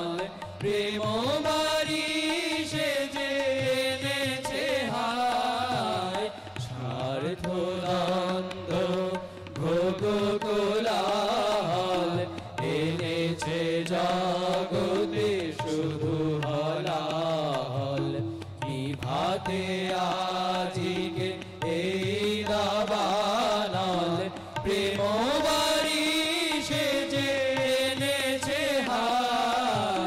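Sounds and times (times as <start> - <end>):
harmonium: 0.0 - 30.0
men singing devotional song: 0.0 - 30.0
tabla: 0.0 - 30.0.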